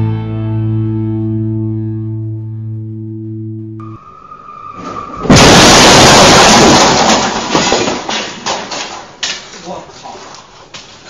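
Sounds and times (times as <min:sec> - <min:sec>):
car crashing through wall: 0:03.8 - 0:09.2
falling debris clatter: 0:04.7 - 0:09.8.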